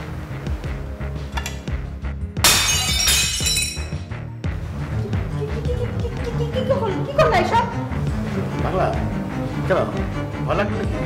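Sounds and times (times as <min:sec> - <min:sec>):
background music: 0:00.0 - 0:11.0
broken pieces ringing: 0:02.4 - 0:04.1
crockery shattering: 0:02.4 - 0:04.1.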